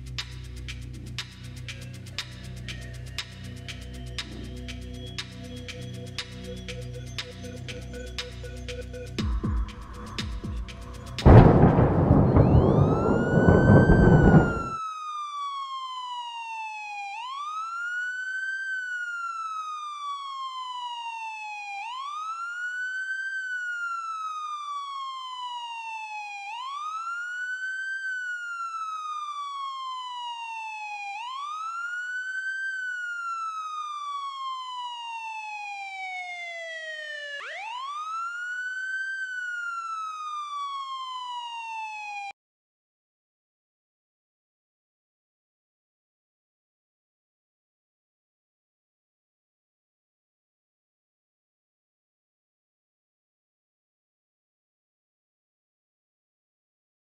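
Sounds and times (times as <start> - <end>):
loud rumbling noise: 11.3 - 14.8
emergency vehicle siren wailing: 11.3 - 42.4.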